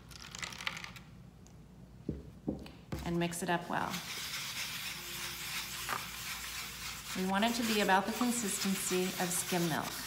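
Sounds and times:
brush scraping in bowl: 3.7 - 10.0.

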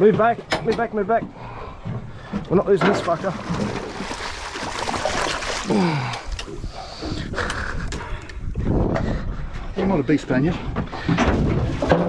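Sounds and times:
knocks and thumps on boat: 0.0 - 5.7, 10.5 - 12.0
fish splashing in water: 3.0 - 6.6.

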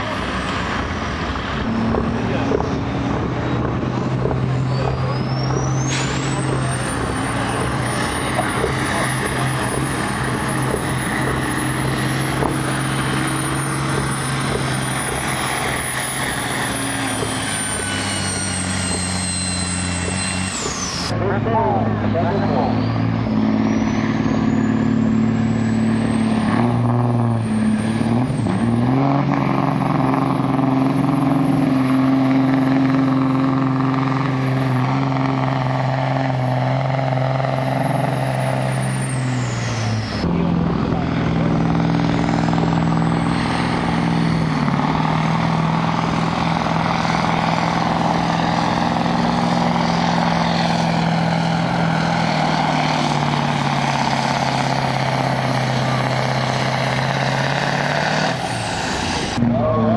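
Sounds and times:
diesel truck engine under load: 0.0 - 59.9
turbo whistle: 15.6 - 21.1.

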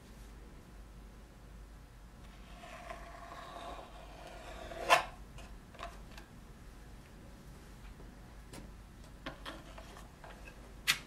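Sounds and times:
faint tool scraping: 2.3 - 5.1.

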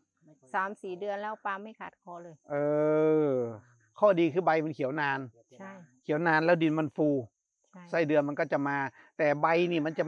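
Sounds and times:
person drawn-out hesitation sound: 2.5 - 5.0, 7.8 - 8.3.

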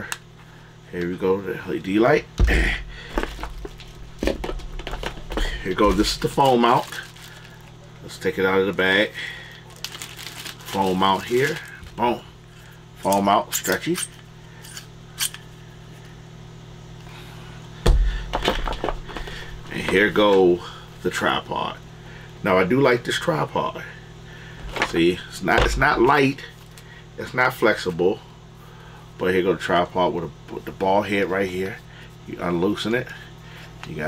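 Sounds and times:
low steady hum: 0.0 - 34.0
plastic packaging clicks and crackles: 3.2 - 7.8, 9.6 - 12.0
loud thump: 17.9 - 18.2.

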